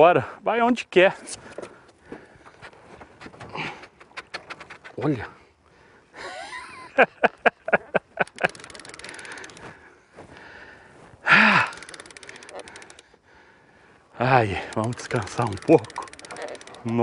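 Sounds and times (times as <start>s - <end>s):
fishing reel clicking: 8.2s - 9.7s, 11.5s - 13.2s, 14.2s - 17.0s
person grunting with effort: 11.2s - 11.8s.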